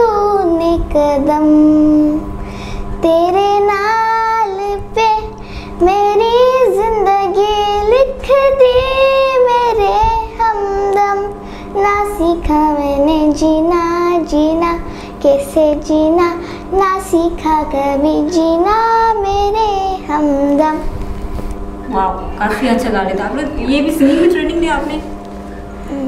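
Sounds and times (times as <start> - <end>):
girl singing into microphone: 0.0 - 21.0.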